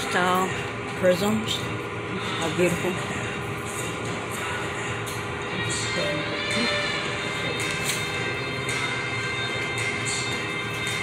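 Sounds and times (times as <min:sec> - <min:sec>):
rush of room noise: 0:00.0 - 0:11.0
shop background music: 0:00.0 - 0:11.0.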